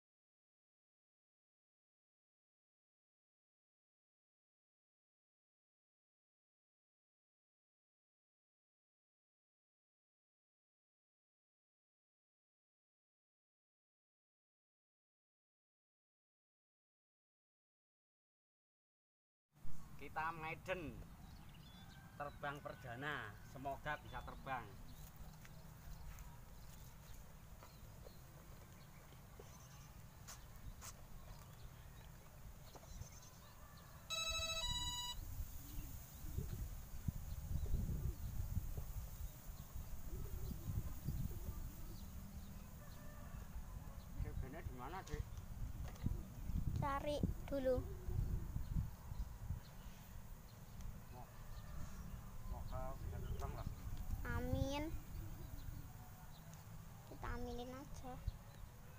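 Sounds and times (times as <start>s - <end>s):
short electronic beeps: 34.1s - 35.3s.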